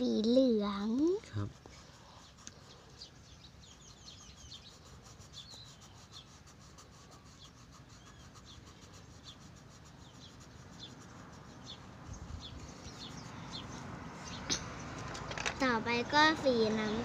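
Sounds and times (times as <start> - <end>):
birds chirping faintly: 0.0 - 17.0
pencil scratching on paper: 1.3 - 14.4.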